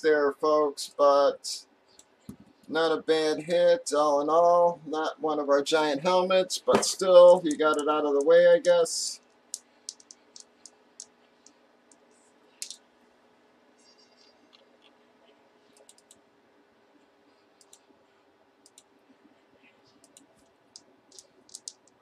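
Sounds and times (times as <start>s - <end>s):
faint steady hum: 0.0s - 22.0s
computer mouse and keyboard clicks: 9.5s - 12.0s, 12.6s - 12.8s, 13.9s - 16.2s, 17.6s - 18.0s, 19.9s - 22.0s.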